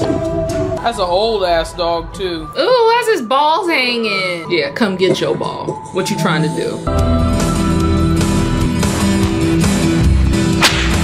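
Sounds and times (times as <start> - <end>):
film soundtrack music: 0.0 - 11.0
sharp whip-like crack: 10.5 - 11.0.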